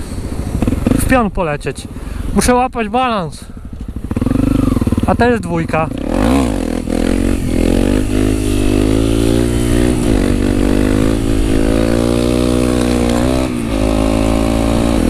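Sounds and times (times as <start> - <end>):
motorcycle engine revving: 0.0 - 2.1, 3.6 - 15.0.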